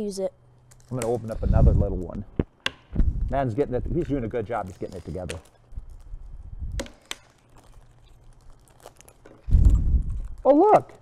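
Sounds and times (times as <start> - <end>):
packets crinkling and rustling: 3.3 - 11.0.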